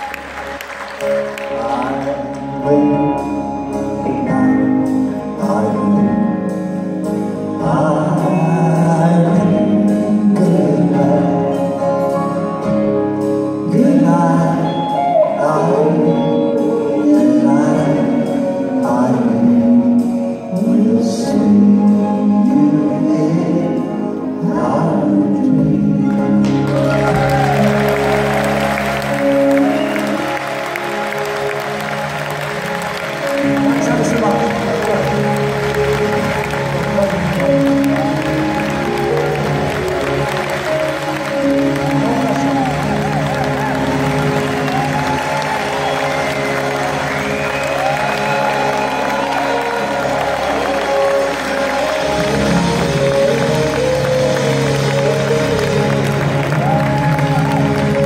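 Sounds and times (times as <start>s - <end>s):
audience applauding and cheering: 0.0s - 4.4s, 26.1s - 58.0s
live rock band: 0.0s - 58.0s.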